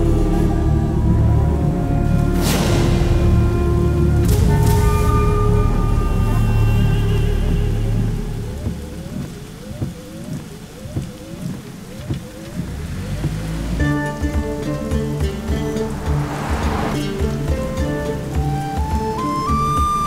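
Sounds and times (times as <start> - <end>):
film score music: 0.0 - 20.0
heavy rain: 0.0 - 20.0
short rising tones: 14.8 - 19.2.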